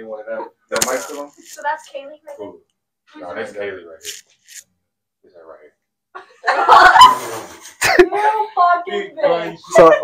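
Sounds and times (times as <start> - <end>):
people talking: 0.0 - 2.1
people laughing: 6.2 - 8.6.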